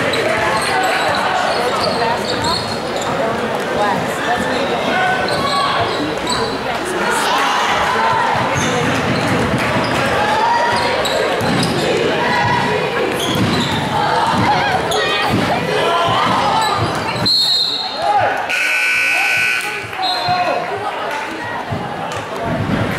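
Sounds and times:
crowd voices echoing: 0.0 - 22.9
basketball bouncing: 8.2 - 17.3
referee's whistle: 17.2 - 20.4
scoreboard buzzer: 18.5 - 19.9.

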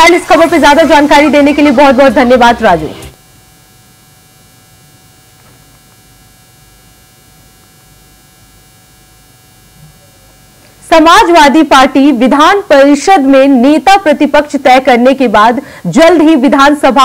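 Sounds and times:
thin high steady tones: 0.0 - 12.2
faint electrical hum: 0.0 - 17.0.

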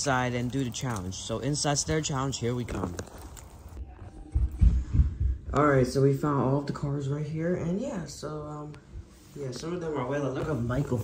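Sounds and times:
microphone handling thumps: 4.3 - 5.8.

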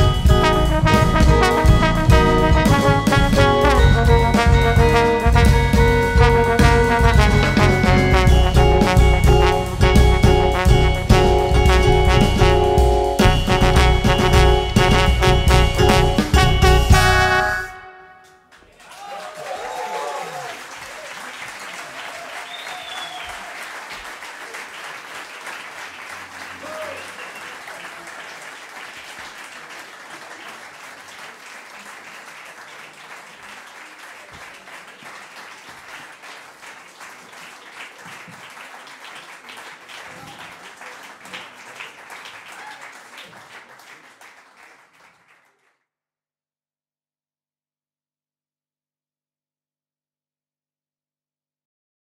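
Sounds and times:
audience applauding: 18.5 - 45.8
people shouting: 18.8 - 20.6.

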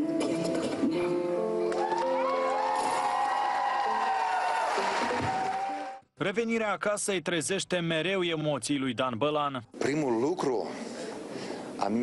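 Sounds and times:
audience cheering: 1.7 - 6.0.

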